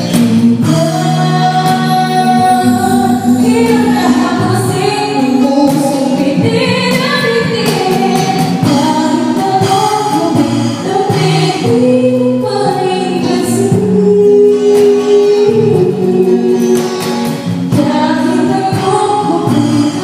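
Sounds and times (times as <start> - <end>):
guitar chords: 0.0 - 20.0
woman singing into microphone: 0.0 - 20.0.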